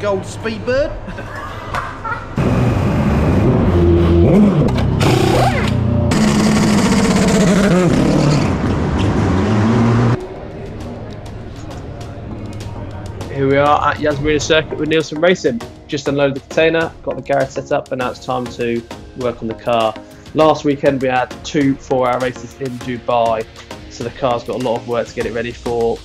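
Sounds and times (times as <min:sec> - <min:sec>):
music: 0:00.0 - 0:02.4, 0:08.4 - 0:26.0
race car engine revving: 0:02.4 - 0:10.2.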